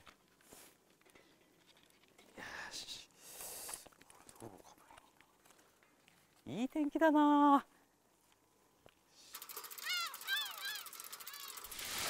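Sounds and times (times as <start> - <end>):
hiss with fine ticking: 3.2 - 3.9
gulls calling: 9.6 - 11.8.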